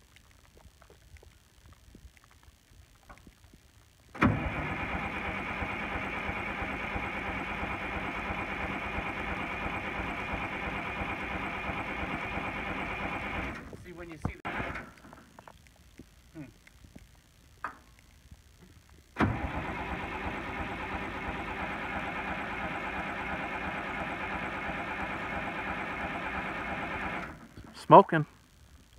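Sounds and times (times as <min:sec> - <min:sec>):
diesel engine cranking on starter: 0:04.2 - 0:13.7, 0:14.5 - 0:15.0, 0:19.2 - 0:27.6.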